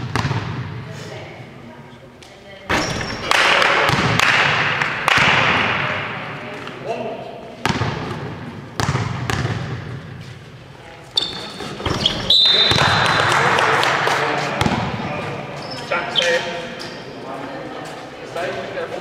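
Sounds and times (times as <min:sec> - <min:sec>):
basketball bouncing on hall floor: 0:00.0 - 0:00.9, 0:02.7 - 0:06.2, 0:07.6 - 0:10.6, 0:11.2 - 0:14.0, 0:14.6 - 0:15.7
voices echoing in hall: 0:00.8 - 0:08.8, 0:09.6 - 0:19.0.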